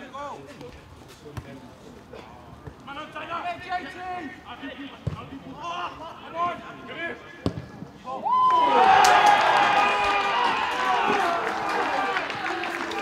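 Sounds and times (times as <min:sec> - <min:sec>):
football being kicked: 0:07.4 - 0:07.7
crowd shouting and cheering: 0:08.1 - 0:13.0
people clapping: 0:08.4 - 0:13.0.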